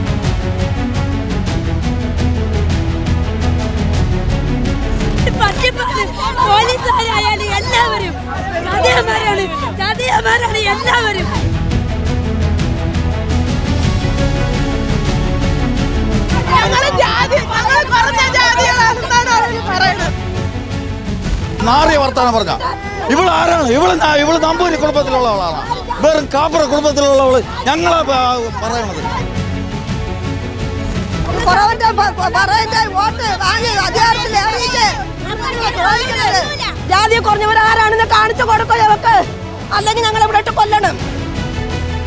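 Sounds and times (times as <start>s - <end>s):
woman shouting: 5.2s - 11.4s, 16.4s - 20.1s, 31.3s - 40.9s
women crying out and talking: 5.2s - 11.5s, 16.3s - 20.1s, 22.5s - 23.2s.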